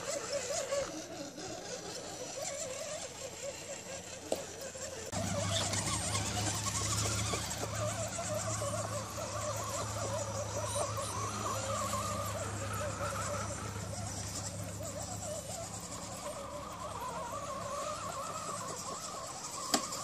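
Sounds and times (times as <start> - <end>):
rc car electric motors whining: 0.0 - 20.0.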